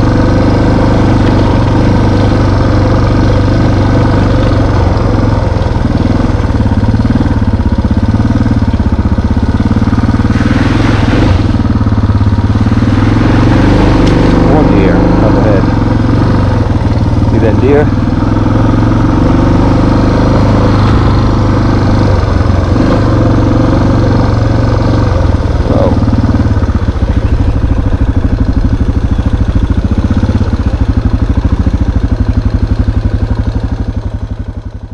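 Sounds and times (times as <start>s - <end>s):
dirt bike engine running: 0.0s - 34.9s.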